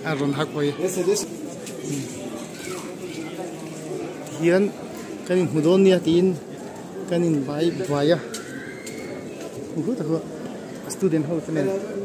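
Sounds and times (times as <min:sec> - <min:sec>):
low indistinct talk: 0:00.0 - 0:12.0.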